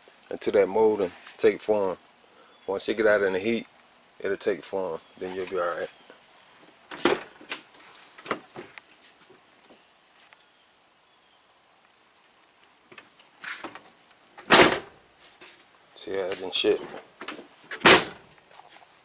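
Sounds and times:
car door thudding shut: 14.4s - 14.9s, 17.7s - 18.2s.

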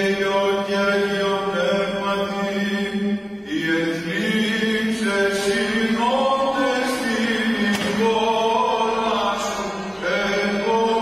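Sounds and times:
chant with held sung notes: 0.0s - 11.0s.

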